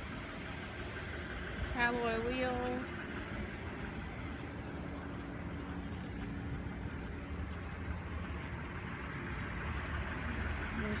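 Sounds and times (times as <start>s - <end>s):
vehicle noise rumble: 0.0s - 11.0s.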